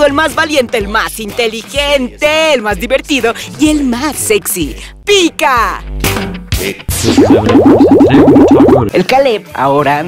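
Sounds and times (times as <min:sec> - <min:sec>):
rising boing-like zips: 0:06.9 - 0:08.9.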